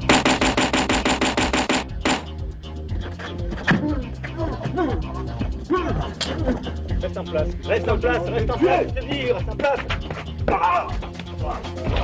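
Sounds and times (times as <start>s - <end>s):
rapid sharp clicks: 0.0s - 2.3s.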